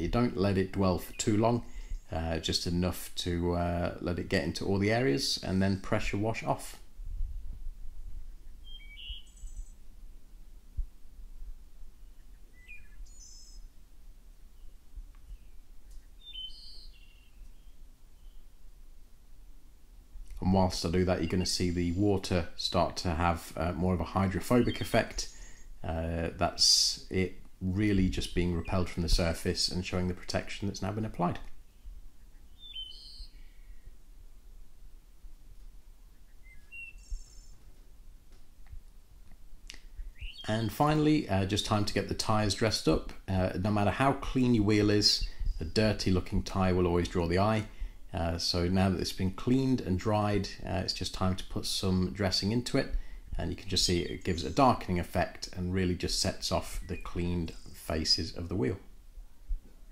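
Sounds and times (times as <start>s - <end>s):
birds chirping: 0.0s - 6.6s, 8.2s - 10.1s, 11.8s - 18.7s, 20.3s - 34.1s, 36.0s - 37.9s, 39.3s - 52.8s, 53.4s - 58.9s
faint bird chirps: 1.0s - 2.2s, 8.2s - 9.9s, 11.9s - 13.8s, 14.4s - 18.6s, 31.6s - 34.0s, 36.1s - 37.7s, 39.7s - 40.5s
faint low rumble: 1.5s - 16.2s.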